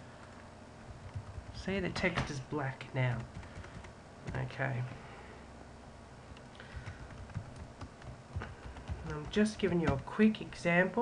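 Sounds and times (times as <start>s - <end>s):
faint computer keyboard typing: 0.1s - 1.8s, 3.0s - 4.5s, 6.4s - 10.0s.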